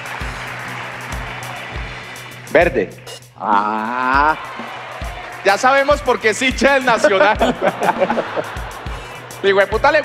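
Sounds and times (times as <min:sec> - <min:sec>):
audience applauding: 0:00.0 - 0:03.1, 0:03.7 - 0:10.0
background music with beat: 0:00.0 - 0:10.0.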